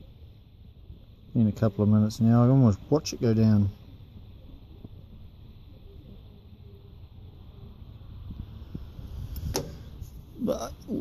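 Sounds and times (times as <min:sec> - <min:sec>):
wind rumble on microphone: 0:06.7 - 0:11.0.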